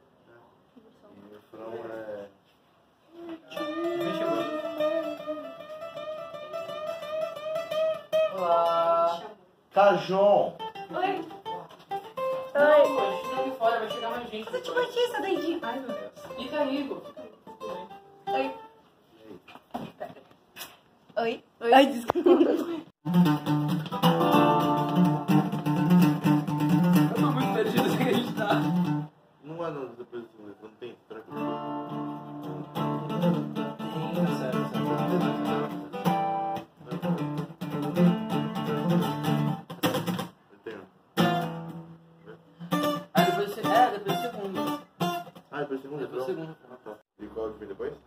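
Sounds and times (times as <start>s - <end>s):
acoustic guitar strumming chords: 3.5s - 8.8s, 10.6s - 18.7s, 23.0s - 29.1s, 31.3s - 40.3s, 41.2s - 45.5s.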